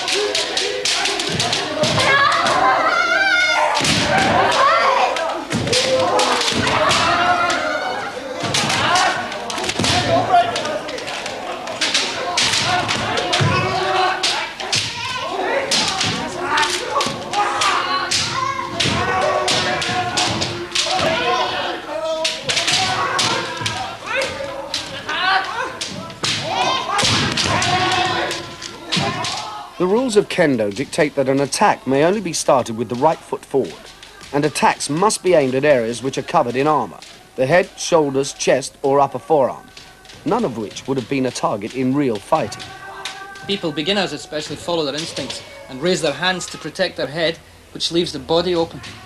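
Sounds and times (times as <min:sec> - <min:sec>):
sharp sparring impacts: 0:11.8 - 0:29.6.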